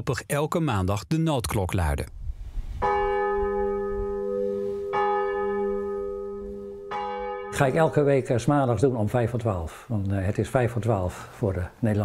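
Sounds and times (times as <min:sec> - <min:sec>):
church bell tolling: 0:02.8 - 0:09.5.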